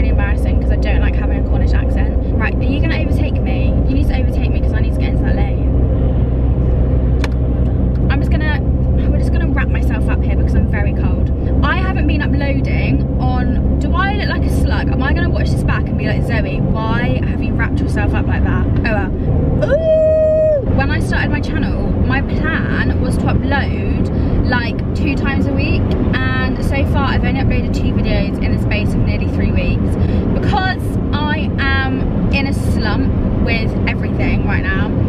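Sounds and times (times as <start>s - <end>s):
woman talking: 0.0s - 5.7s, 8.0s - 19.8s, 20.7s - 35.0s
car engine and tyres rumble: 0.0s - 35.0s.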